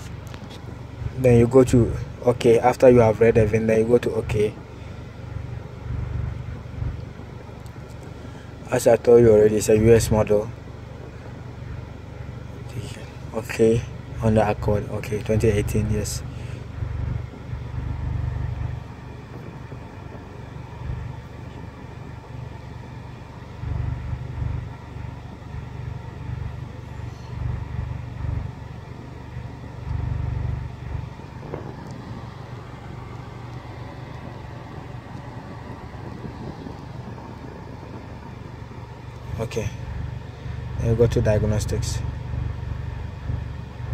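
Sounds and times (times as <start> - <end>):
car engine idling: 0.0 - 43.9.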